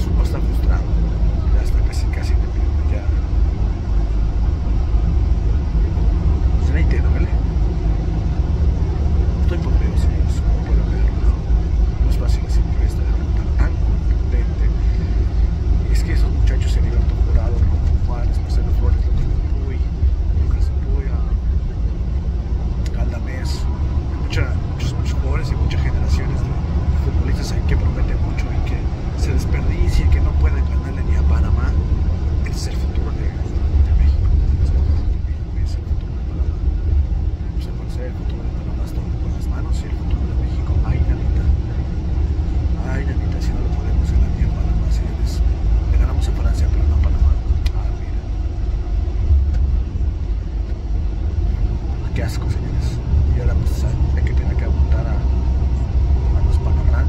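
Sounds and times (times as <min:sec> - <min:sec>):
man talking: 0:00.0 - 0:03.4, 0:06.5 - 0:07.5, 0:09.3 - 0:21.5, 0:22.8 - 0:36.7, 0:37.3 - 0:42.0, 0:42.6 - 0:48.4, 0:51.4 - 0:57.0
bus engine rumble: 0:00.0 - 0:57.0.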